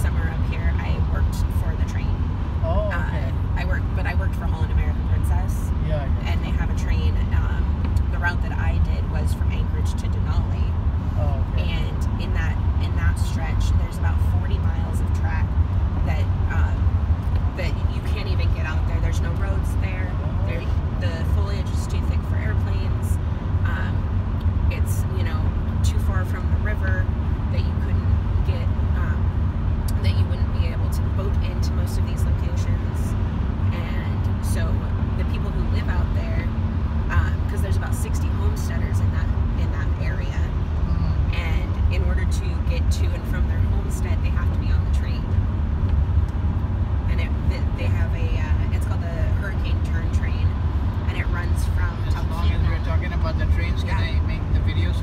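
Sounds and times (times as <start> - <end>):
vehicle driving on wet highway: 0.0 - 55.0.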